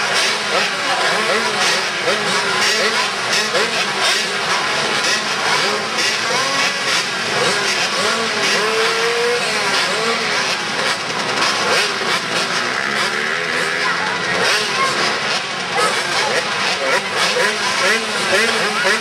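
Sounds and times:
small motorbike engines revving: 0.0s - 19.0s.

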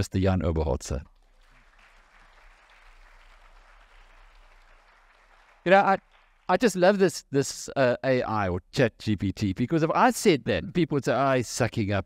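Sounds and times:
faint audience applause: 1.1s - 6.8s.

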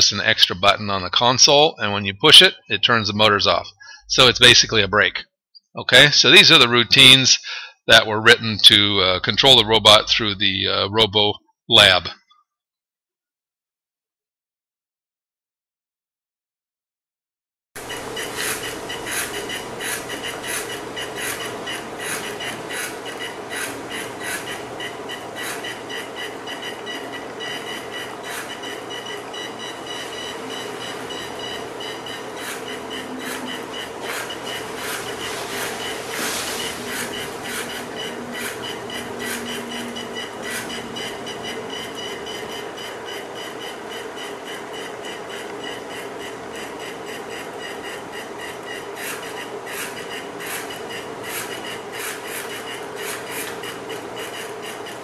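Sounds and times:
electric motors whining: 17.8s - 55.0s.

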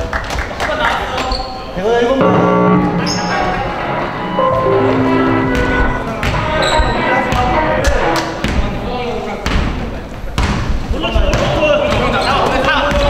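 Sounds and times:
held musical or voice tones: 2.2s - 6.5s
sneaker squeaks: 6.2s - 7.1s.

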